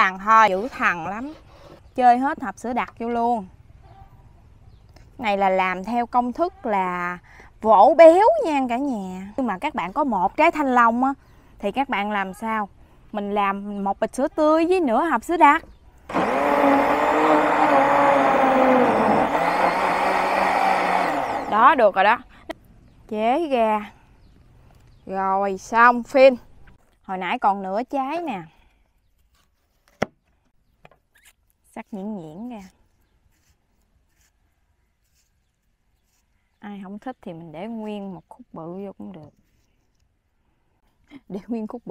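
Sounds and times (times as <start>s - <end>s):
blender motor running: 16.1s - 21.7s.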